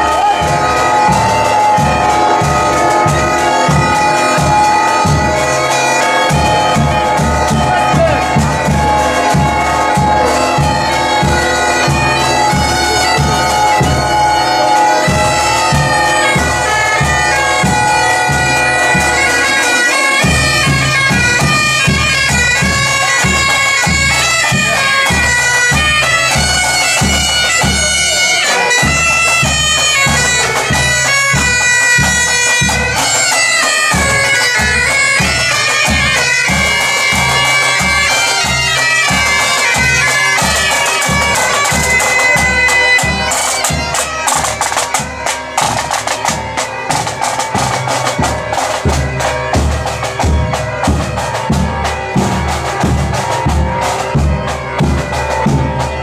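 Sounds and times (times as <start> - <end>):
bagpipes playing a tune: 0.0 - 56.0.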